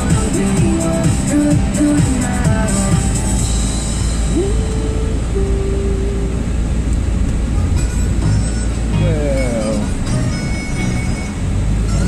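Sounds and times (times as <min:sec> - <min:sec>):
music playing: 0:00.0 - 0:06.3, 0:07.5 - 0:12.0
car engine and road rumble: 0:00.0 - 0:12.0.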